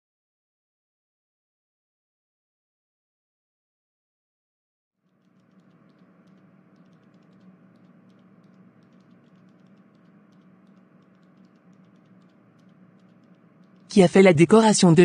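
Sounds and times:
faint light clicks: 0:05.1 - 0:13.9
low steady hum: 0:05.1 - 0:15.0.

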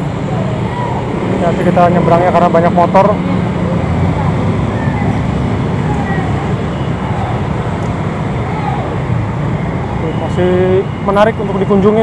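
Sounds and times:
motor scooters passing: 0:00.0 - 0:12.0.

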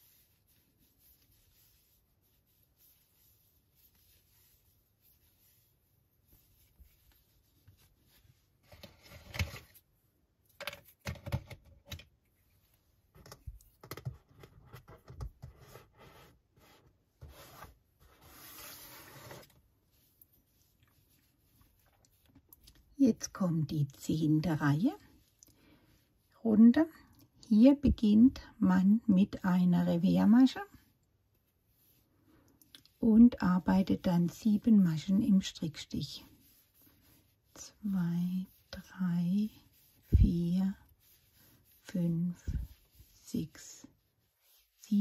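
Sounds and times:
yarn and crochet hook rustling: 0:00.0 - 0:28.2, 0:29.1 - 0:45.0.

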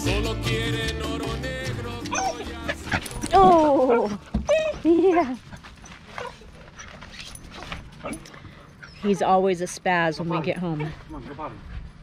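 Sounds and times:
dog whining: 0:02.1 - 0:09.4.

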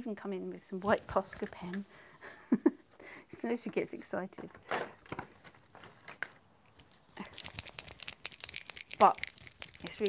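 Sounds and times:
art supplies clicking and rustling: 0:00.8 - 0:01.9, 0:04.4 - 0:10.0.

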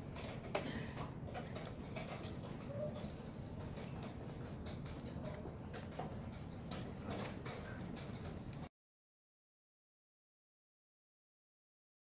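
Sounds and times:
low room hum: 0:00.0 - 0:08.7.

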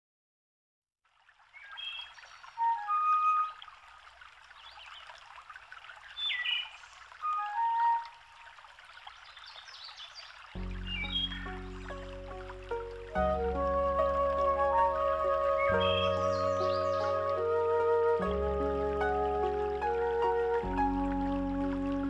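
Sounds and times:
running water: 0:01.0 - 0:22.0
birds whistling and calling: 0:01.6 - 0:03.6, 0:06.2 - 0:08.2, 0:10.8 - 0:12.0, 0:13.6 - 0:18.3.

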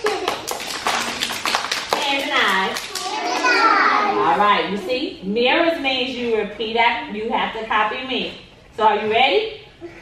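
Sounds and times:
hand clapping: 0:00.0 - 0:03.6
young children's voices: 0:02.8 - 0:04.4.

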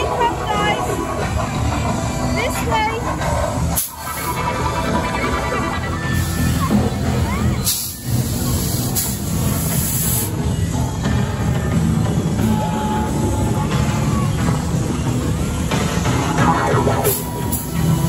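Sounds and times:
loud music with heavy bass: 0:00.0 - 0:09.4, 0:11.1 - 0:18.0.

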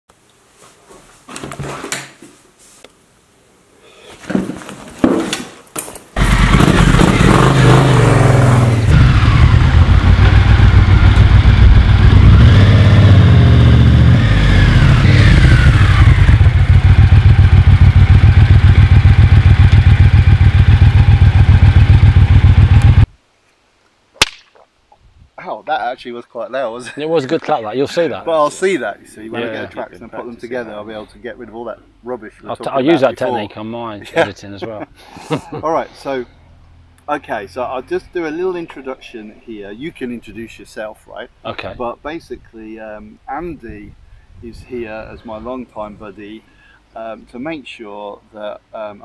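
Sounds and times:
motorcycle engine passing: 0:06.2 - 0:23.1
voices: 0:25.4 - 0:36.3, 0:37.0 - 0:49.0.

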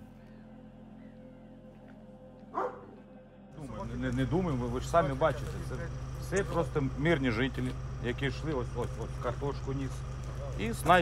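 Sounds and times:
dog barking: 0:02.5 - 0:03.0.

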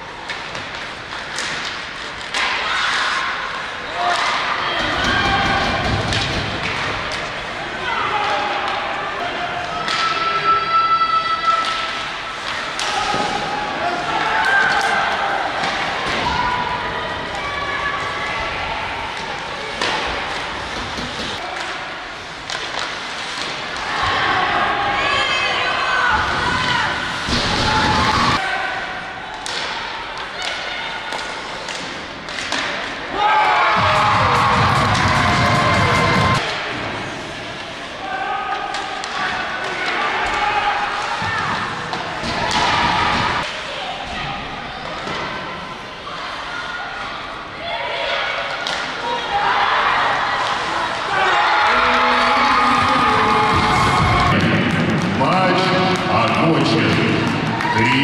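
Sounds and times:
hockey sticks and puck clacking: 0:00.1 - 0:10.5, 0:11.4 - 0:24.4, 0:29.3 - 0:33.2, 0:33.8 - 0:37.9, 0:38.5 - 0:43.8, 0:48.5 - 0:49.2, 0:50.3 - 0:58.0.

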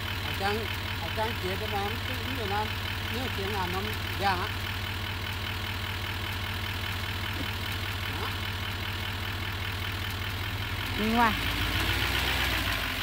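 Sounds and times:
pickup truck engine idling: 0:00.0 - 0:13.0.

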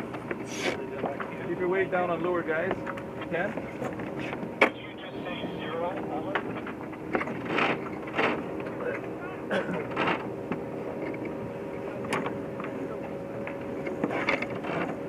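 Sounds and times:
steady low hum: 0:00.0 - 0:15.0
wind: 0:00.0 - 0:15.0.

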